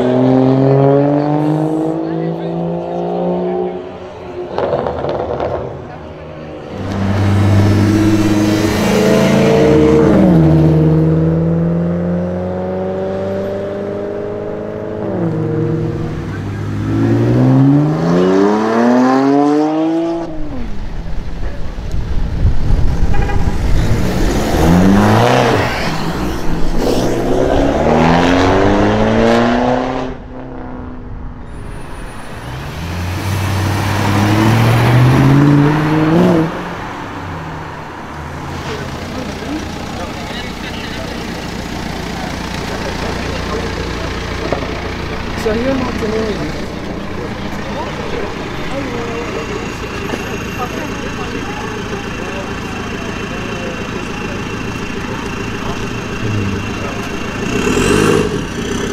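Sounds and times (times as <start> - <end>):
car engine accelerating hard: 0.0 - 58.9.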